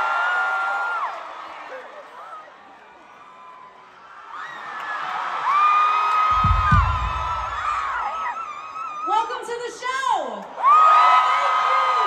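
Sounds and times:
crowd screaming and cheering: 0:00.0 - 0:09.5, 0:10.4 - 0:12.0
low thump: 0:06.4 - 0:08.0.

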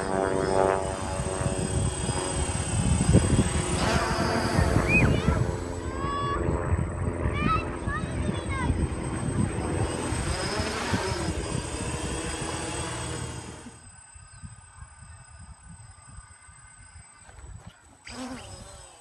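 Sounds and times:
quadcopter propellers buzzing: 0:00.0 - 0:19.0.

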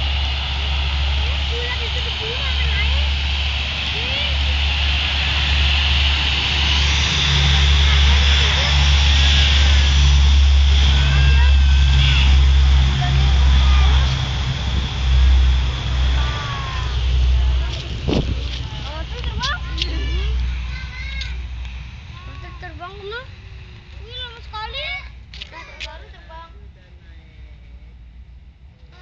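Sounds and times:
distant turboprop plane engines: 0:00.0 - 0:29.0.

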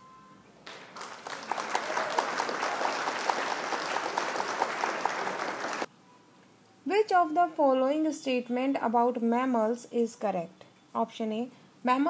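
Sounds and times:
faint beep: 0:00.0 - 0:00.5
crowd clapping: 0:00.6 - 0:05.9.

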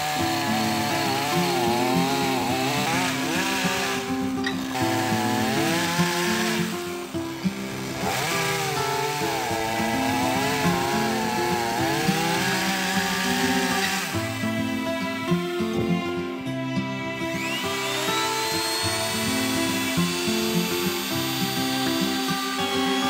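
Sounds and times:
chainsaw cutting wood: 0:00.0 - 0:23.0.

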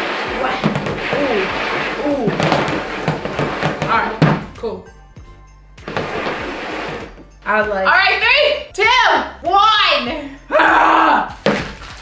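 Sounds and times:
room noise: 0:00.0 - 0:04.6, 0:05.8 - 0:07.4.

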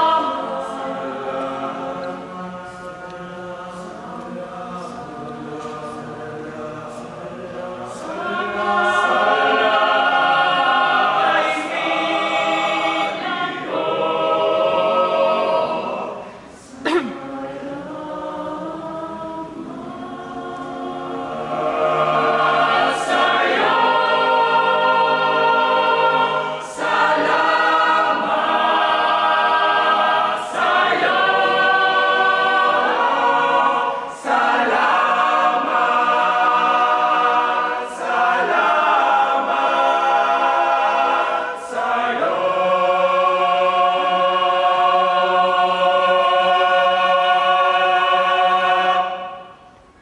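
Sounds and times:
boys' choir singing a cappella: 0:00.0 - 0:50.0.

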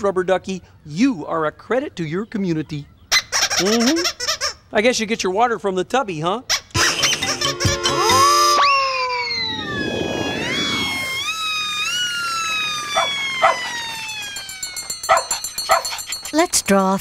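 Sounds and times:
cartoon siren wailing: 0:06.8 - 0:15.9
dog barks: 0:13.0 - 0:13.7, 0:15.1 - 0:16.0.

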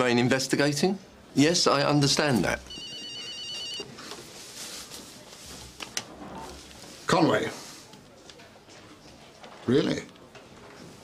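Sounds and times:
telephone warbling ring: 0:02.7 - 0:03.9.

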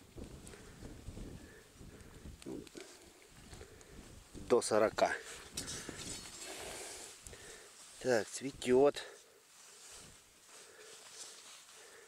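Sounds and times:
leaves rustling: 0:00.0 - 0:12.0.

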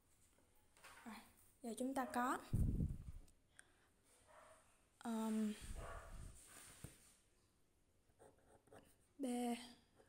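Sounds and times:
ballpoint pen scratching paper: 0:08.1 - 0:09.1.

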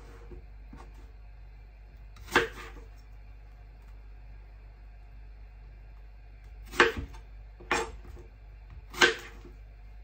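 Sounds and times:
knife cutting apple: 0:02.1 - 0:03.1, 0:06.4 - 0:09.6
knife chop on wooden board: 0:02.2 - 0:02.8, 0:06.6 - 0:08.2, 0:08.8 - 0:09.5.

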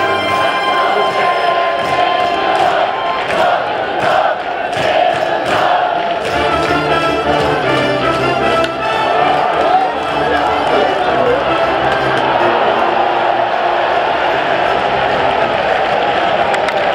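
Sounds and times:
brass band playing: 0:00.0 - 0:03.6, 0:06.2 - 0:15.1
crowd shouting: 0:00.0 - 0:16.9.

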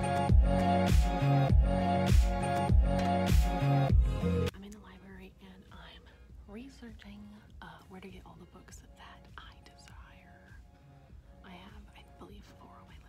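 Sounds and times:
woman whispering: 0:04.5 - 0:10.7, 0:11.4 - 0:13.0.

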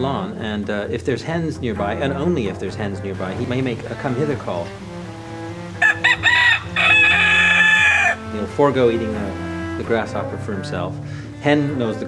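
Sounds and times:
rooster crowing: 0:05.3 - 0:08.3.

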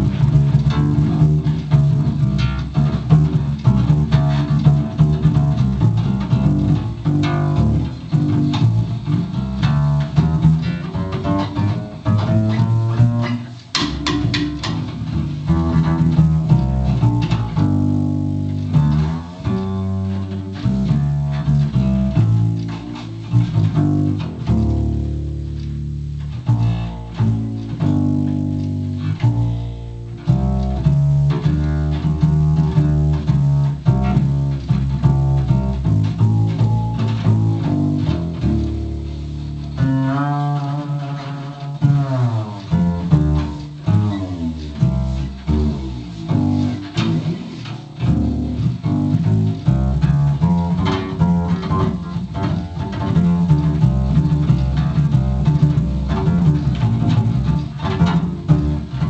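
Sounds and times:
double bass notes: 0:00.0 - 0:59.0.

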